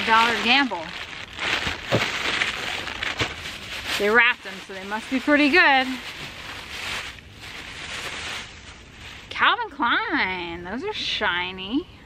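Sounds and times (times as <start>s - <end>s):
plastic bags crinkling: 0.0s - 9.6s.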